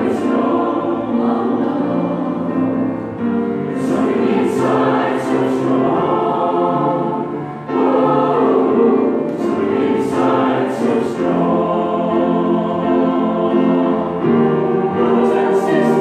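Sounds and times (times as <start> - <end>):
choir singing sustained chords: 0.0 - 16.0.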